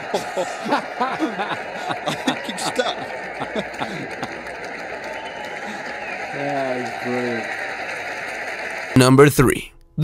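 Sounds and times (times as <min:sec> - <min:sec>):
crowd hubbub: 0:00.0 - 0:08.9
man's voice: 0:09.0 - 0:10.0.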